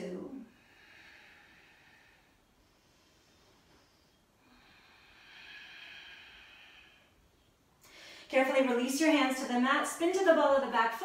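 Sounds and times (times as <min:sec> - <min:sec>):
person exhaling slowly: 0:00.6 - 0:07.2.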